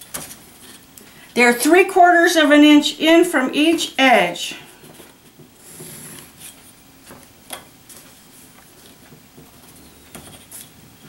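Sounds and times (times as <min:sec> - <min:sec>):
paper rustling: 0:05.9 - 0:10.8.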